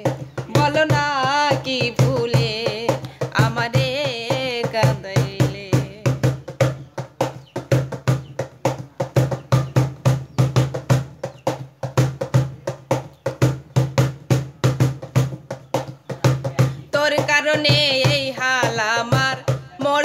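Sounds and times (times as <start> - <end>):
fast hand-drum rhythm: 0.0 - 20.0.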